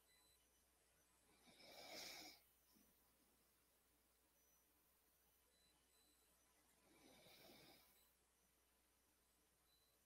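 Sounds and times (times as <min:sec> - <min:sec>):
faint breath: 0:01.3 - 0:03.0, 0:06.7 - 0:08.2.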